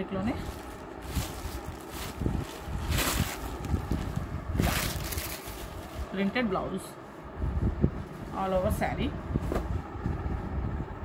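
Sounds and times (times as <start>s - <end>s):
fabric rustling: 0.2s - 6.4s.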